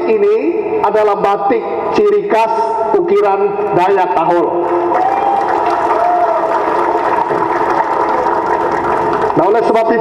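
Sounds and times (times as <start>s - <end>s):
audience applause: 4.7s - 9.8s.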